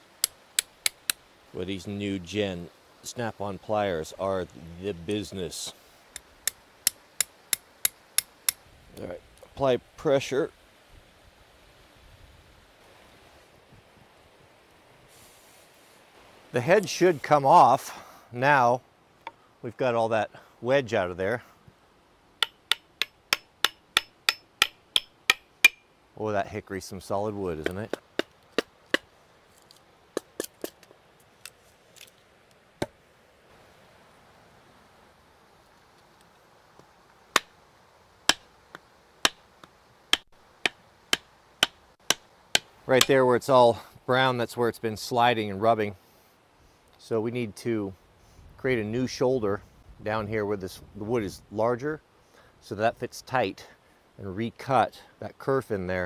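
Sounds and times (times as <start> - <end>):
hatchet tapping axe head: 22.4 - 25.8.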